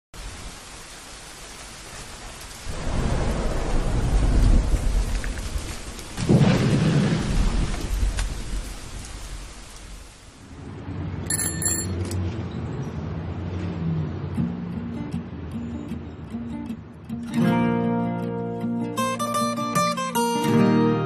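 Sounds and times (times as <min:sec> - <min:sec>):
steady rain: 0:00.2 - 0:11.4
thunder rolling: 0:02.6 - 0:11.3.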